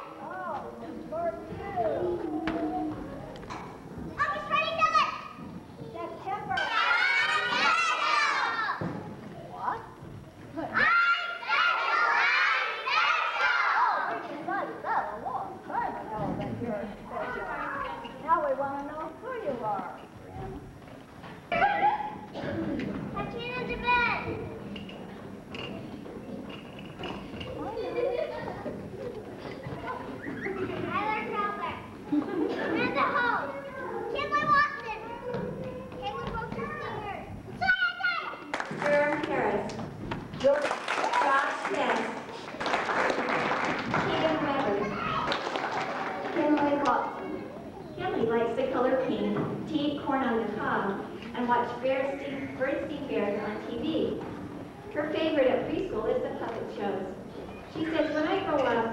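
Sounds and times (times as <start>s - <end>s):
young children chattering: 0.0s - 20.8s, 21.4s - 39.7s, 43.2s - 58.9s.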